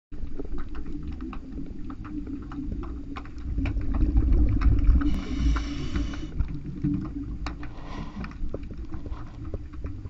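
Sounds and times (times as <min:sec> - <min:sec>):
underwater rumble of moving water: 0:00.1 - 0:10.0
sharp clicks and crackles: 0:00.2 - 0:10.0
diver breathing through regulator: 0:05.0 - 0:06.4, 0:07.6 - 0:09.5.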